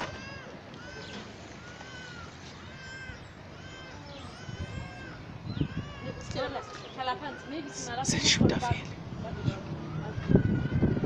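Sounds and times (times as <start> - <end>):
animal calling: 0.0 - 8.2.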